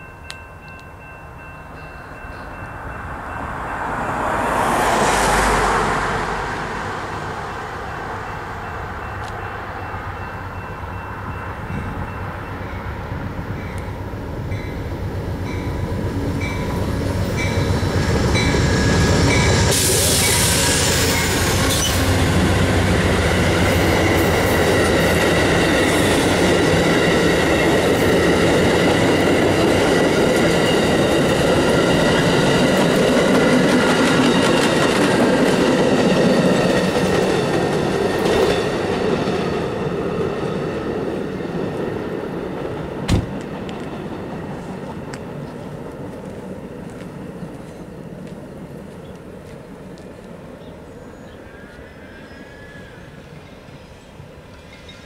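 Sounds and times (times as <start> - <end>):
train bell ringing: 0.0 - 5.0, 8.2 - 22.2, 23.0 - 35.0, 53.3 - 55.0
diesel locomotive engine rumble: 0.0 - 51.8.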